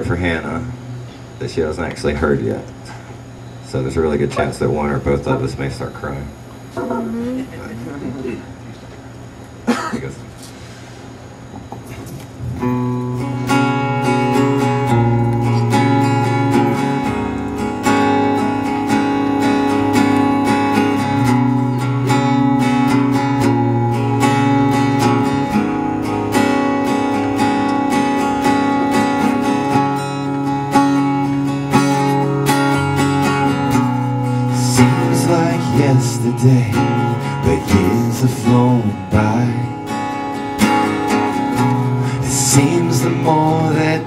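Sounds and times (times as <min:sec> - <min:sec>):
low bass notes: 0:12.4 - 0:44.0
strummed acoustic guitar: 0:12.4 - 0:44.0.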